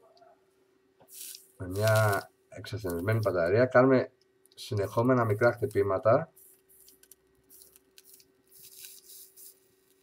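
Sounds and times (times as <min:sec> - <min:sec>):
hissing crackles of heated coil: 0:01.0 - 0:03.6, 0:04.6 - 0:10.0.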